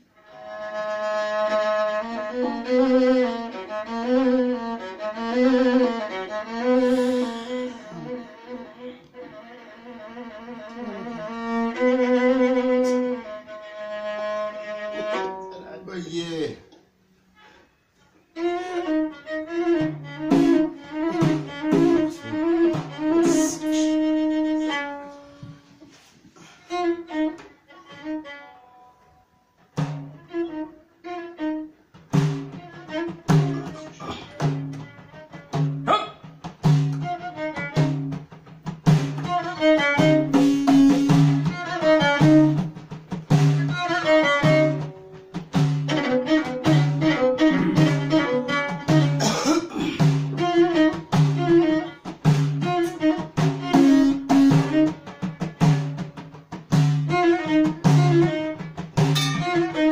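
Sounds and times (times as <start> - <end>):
violin folk melody: 0.0 - 15.9, 17.3 - 35.8, 36.4 - 49.2, 50.2 - 59.9
frame drum beats: 19.2 - 24.8, 29.5 - 30.5, 31.8 - 59.9.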